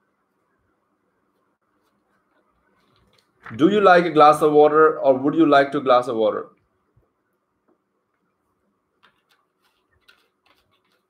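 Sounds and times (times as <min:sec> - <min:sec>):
faint irregular clicks: 0:09.0 - 0:11.0.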